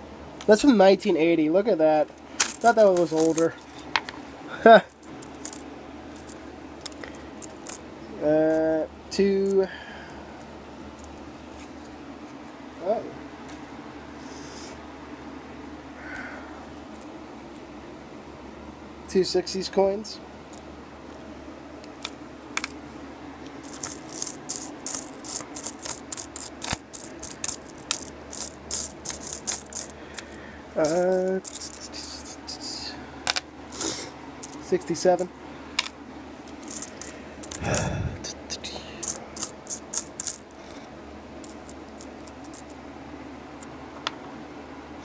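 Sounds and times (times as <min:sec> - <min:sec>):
coins clinking: 0:02.4 - 0:04.0, 0:04.8 - 0:07.8, 0:21.9 - 0:22.8, 0:23.6 - 0:32.4, 0:33.3 - 0:34.9, 0:35.8 - 0:37.8, 0:39.0 - 0:40.6, 0:41.4 - 0:42.8.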